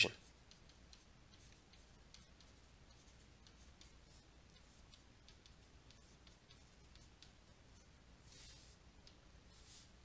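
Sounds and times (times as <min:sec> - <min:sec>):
stylus scratching on a tablet: 0:00.0 - 0:10.0.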